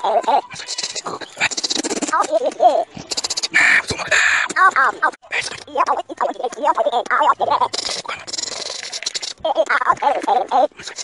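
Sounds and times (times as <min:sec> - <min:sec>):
sped-up squeaky voice: 0:00.0 - 0:11.0.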